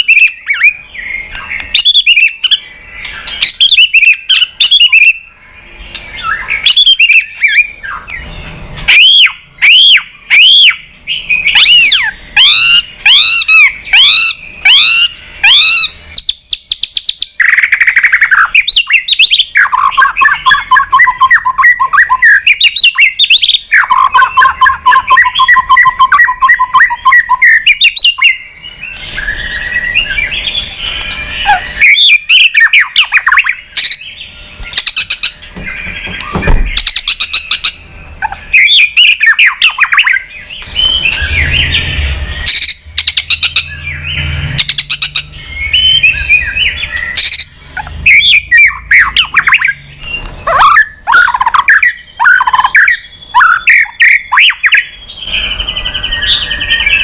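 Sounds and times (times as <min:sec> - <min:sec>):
sharp bird clicking calls: 0:00.0 - 0:56.4
bird singing varied song: 0:00.0 - 0:57.0
rapid repeated bird notes: 0:00.0 - 0:57.0
whistled bird phrases: 0:00.0 - 0:57.0.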